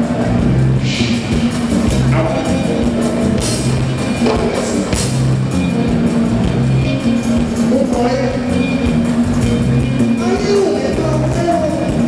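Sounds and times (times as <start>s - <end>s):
bass line: 0.0s - 12.0s
live band playing: 0.0s - 12.0s
person singing: 0.8s - 3.3s
drum beat: 0.8s - 8.1s.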